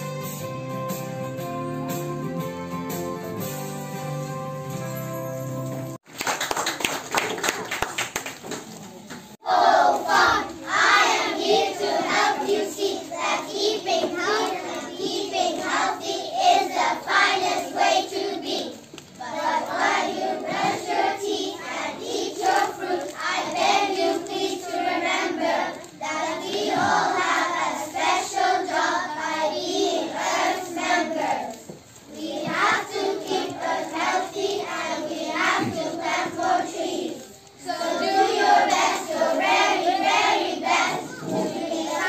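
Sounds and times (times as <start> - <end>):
children singing in unison: 9.4 - 42.0.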